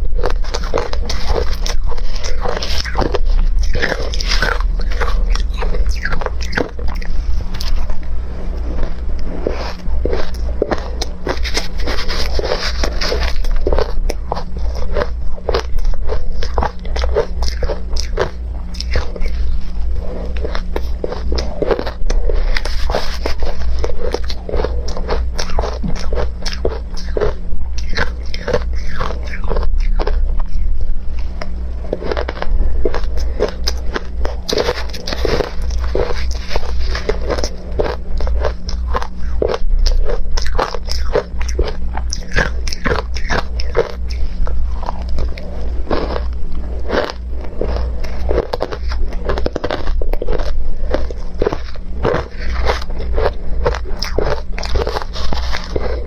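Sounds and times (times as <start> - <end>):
crunching and chewing ice: 0.0 - 56.0
steady low hum: 0.0 - 56.0.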